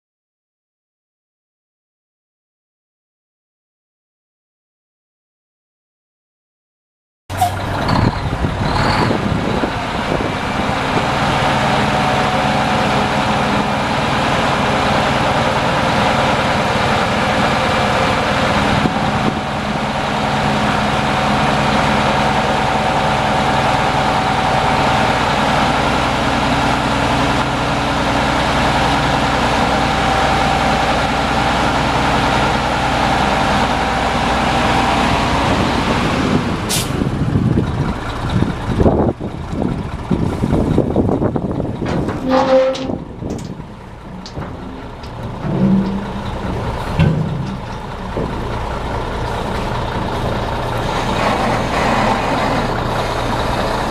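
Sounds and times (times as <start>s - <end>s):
diesel truck engine running: 7.3s - 53.9s
short sharp air hiss: 36.7s - 37.0s.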